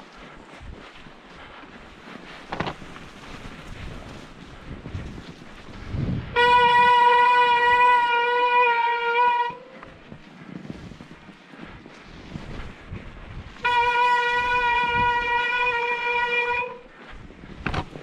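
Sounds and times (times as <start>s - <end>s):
wind noise on microphone: 0.0s - 18.0s.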